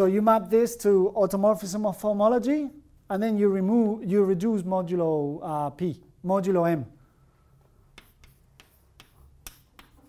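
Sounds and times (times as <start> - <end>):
chalk tapping on blackboard: 7.7 - 10.0.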